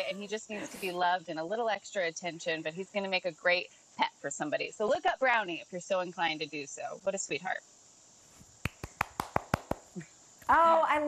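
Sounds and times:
person clapping hands quickly: 0:08.6 - 0:10.0.

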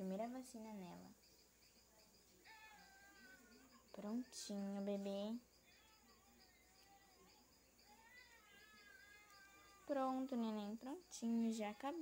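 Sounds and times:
woman speaking soothingly: 0:00.0 - 0:01.2, 0:03.9 - 0:05.5, 0:09.8 - 0:12.0
baby crying: 0:02.4 - 0:03.8, 0:05.7 - 0:10.2.

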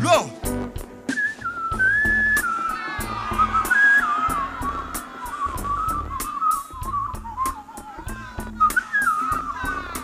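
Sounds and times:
band drum and bass beat: 0:00.0 - 0:10.0
person whistling melody: 0:01.1 - 0:10.0.

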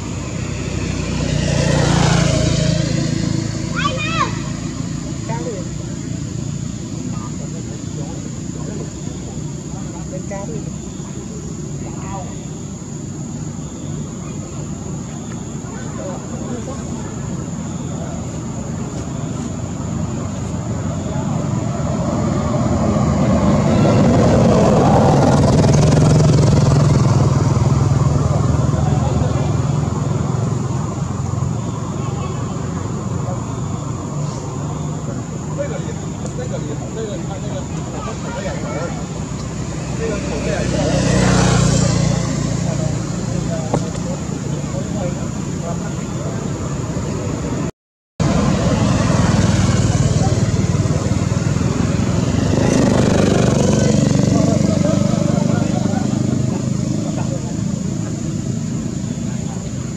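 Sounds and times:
motor vehicles passing: 0:00.0 - 0:59.9.

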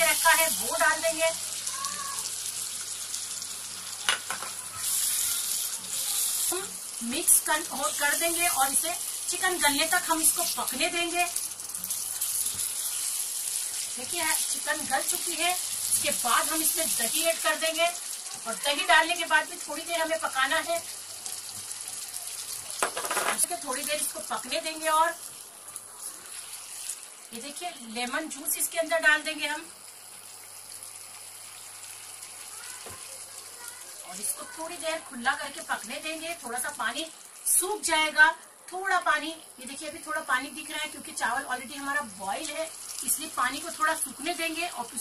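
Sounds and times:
gravy sizzling in a pan: 0:00.0 - 0:45.0.

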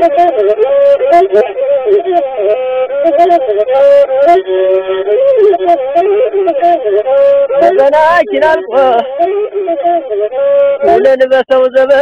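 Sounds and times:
melismatic singing: 0:00.0 - 0:12.0.

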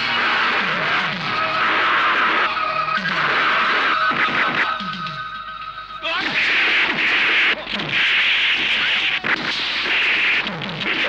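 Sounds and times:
action film score: 0:00.0 - 0:11.0.

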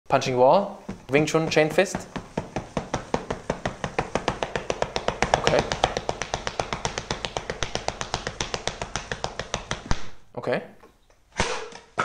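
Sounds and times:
fists punching a plaster wall: 0:00.9 - 0:10.2.

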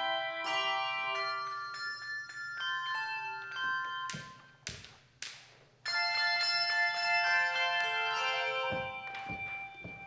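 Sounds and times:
handbell chord ringing: 0:00.0 - 0:04.6
sustained handbell tones: 0:00.0 - 0:04.6, 0:05.8 - 0:10.0.

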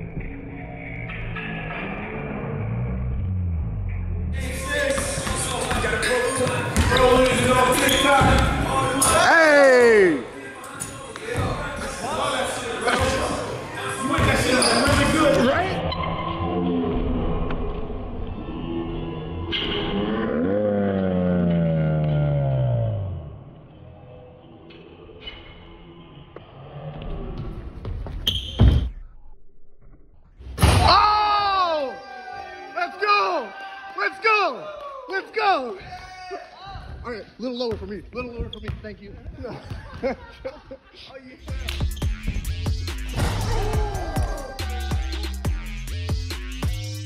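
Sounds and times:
basketball bouncing on hardwood court: 0:04.9 - 0:07.6, 0:37.7 - 0:40.2
slowed-down deep drawn-out shout: 0:20.2 - 0:23.5, 0:43.3 - 0:45.4
muffled bass-heavy music: 0:41.4 - 0:47.0.

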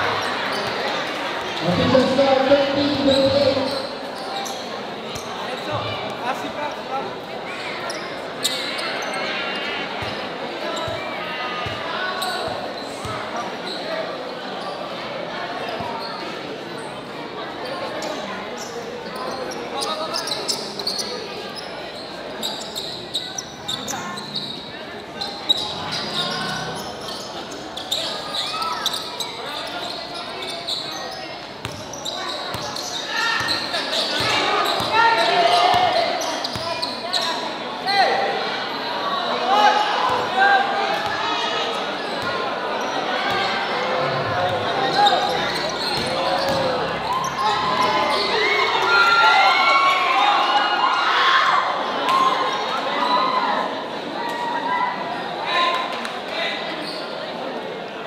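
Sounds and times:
players' voices echoing: 0:00.0 - 0:51.0
crowd chatter: 0:00.0 - 0:58.0
basketball bouncing on court floor: 0:45.5 - 0:46.8.

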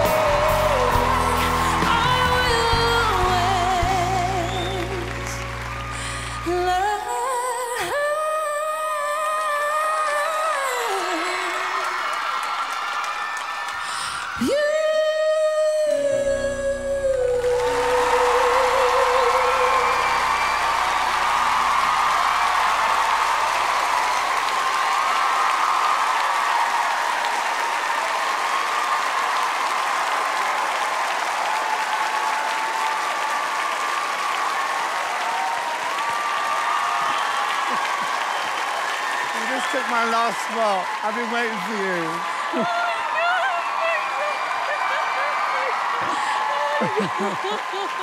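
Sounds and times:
audience applauding and cheering: 0:00.0 - 0:48.0.

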